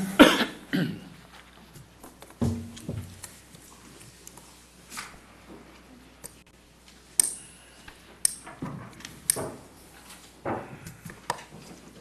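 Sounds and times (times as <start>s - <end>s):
person coughing: 0.0s - 1.2s.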